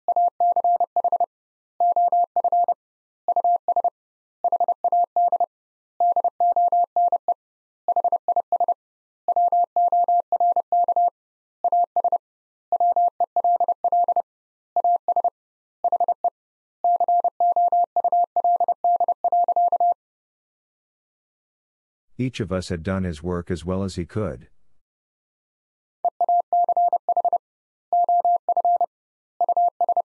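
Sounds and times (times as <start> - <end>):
morse code tone: 28.0 - 30.0.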